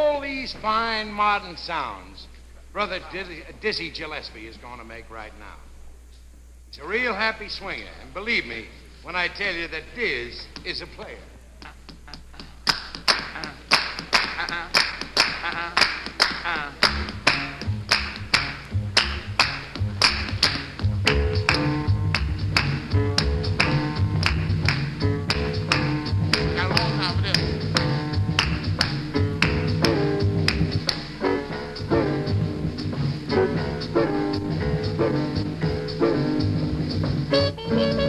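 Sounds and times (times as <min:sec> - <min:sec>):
jazz band playing: 0:16.4 - 0:38.0
double bass: 0:16.5 - 0:38.0.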